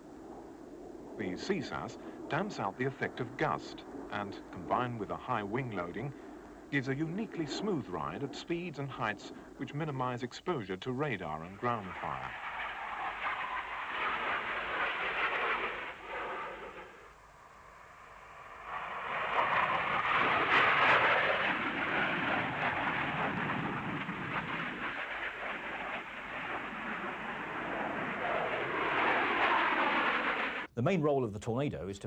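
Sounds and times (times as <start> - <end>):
jet flying low: 0.0 - 30.8.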